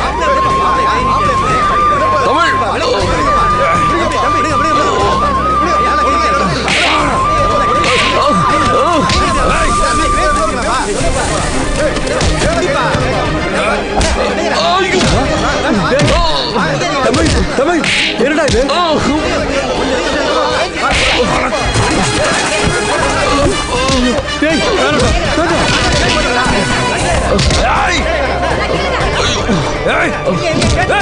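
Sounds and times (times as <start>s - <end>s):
background music melody: 0.0s - 31.0s
crowd shouting: 0.0s - 31.0s.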